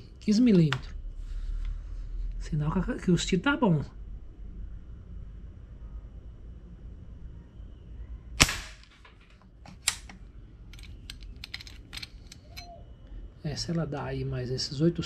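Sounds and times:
air rifle shot: 8.4s - 9.0s.

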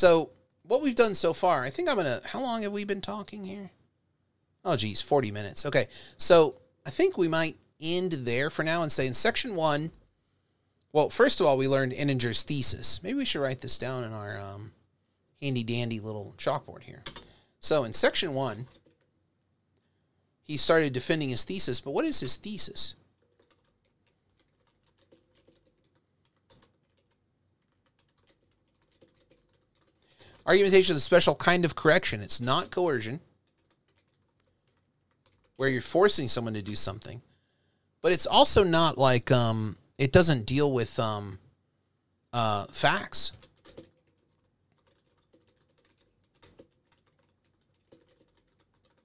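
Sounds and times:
keystrokes on computer keyboard: 17.0s - 17.3s, 18.6s - 19.1s, 23.2s - 30.4s, 33.4s - 35.6s, 43.3s - 49.0s.

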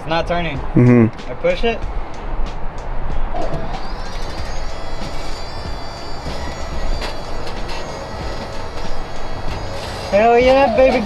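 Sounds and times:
power steering pump whine: 3.3s - 11.0s.

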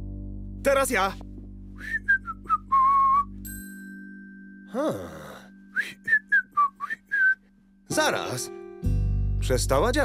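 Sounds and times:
person whistling: 1.8s - 3.4s, 5.7s - 7.5s.

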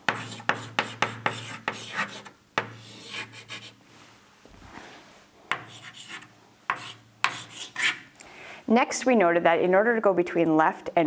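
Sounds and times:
chalk scratching on blackboard: 0.1s - 3.8s, 5.5s - 8.1s.

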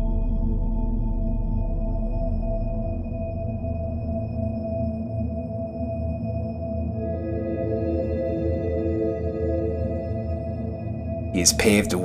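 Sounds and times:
ambient synth chords: 0.0s - 12.0s.

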